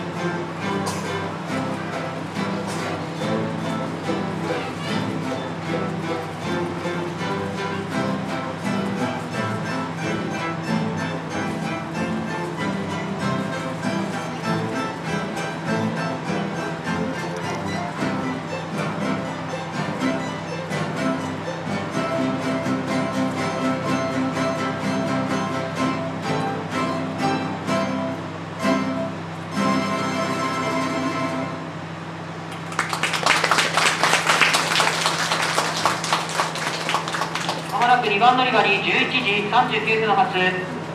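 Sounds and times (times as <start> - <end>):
mandolin orchestra playing: 0.0 - 32.5
audience applauding: 32.5 - 38.2.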